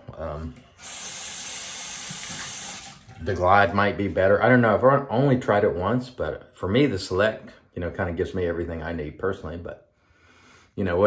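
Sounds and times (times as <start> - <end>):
tap water running: 0.5 - 3.9.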